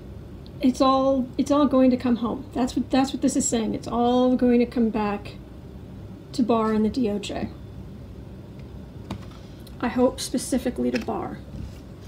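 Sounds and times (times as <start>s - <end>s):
woman talking: 0.6s - 5.4s, 6.3s - 7.6s, 9.7s - 11.5s.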